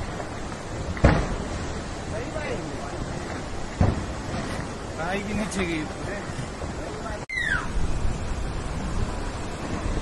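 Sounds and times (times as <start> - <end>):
landslide rumble: 0.0 - 10.0.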